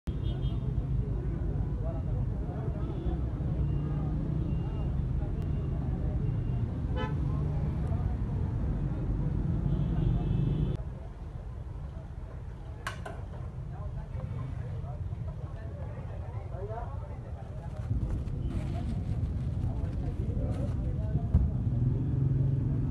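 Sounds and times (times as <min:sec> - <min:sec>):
traffic rumble: 0:00.1 - 0:22.9
long car horn honk: 0:07.0 - 0:07.2.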